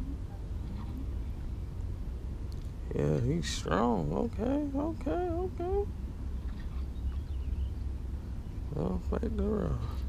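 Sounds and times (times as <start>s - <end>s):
wind rumble on microphone: 0.0s - 10.0s
faint high chirp: 6.4s - 8.7s.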